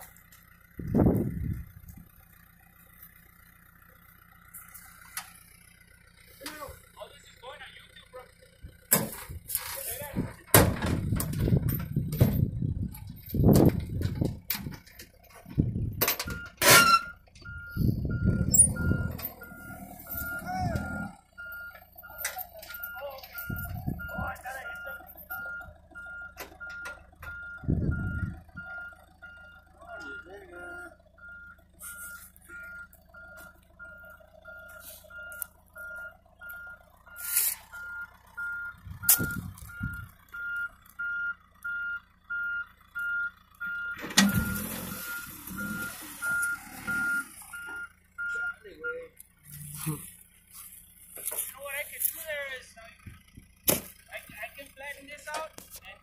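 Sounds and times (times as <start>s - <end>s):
engine humming: 0.0s - 56.0s
low rumbles: 0.0s - 56.0s
reversing alarm beeping: 16.2s - 49.8s.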